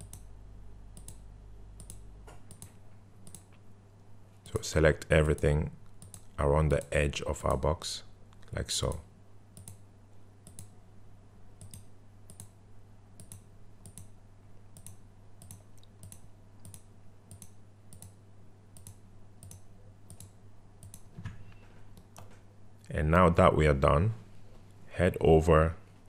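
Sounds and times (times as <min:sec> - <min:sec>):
computer mouse clicking: 0:00.0 - 0:00.3, 0:00.9 - 0:03.6, 0:05.3 - 0:06.9, 0:09.6 - 0:09.8, 0:10.4 - 0:10.8, 0:11.6 - 0:12.6, 0:13.2 - 0:14.2, 0:14.8 - 0:18.2, 0:18.8 - 0:22.4
faint low hum: 0:00.0 - 0:26.0.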